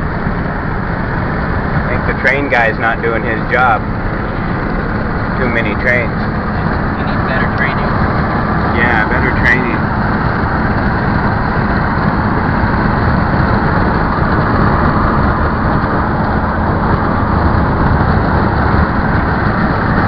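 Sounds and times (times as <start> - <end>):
road and wind noise inside vehicle: 0.0 - 20.0.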